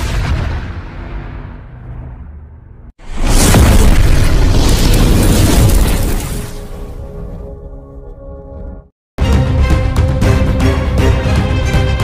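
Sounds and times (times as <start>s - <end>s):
explosion boom and rumble: 0.0s - 7.1s.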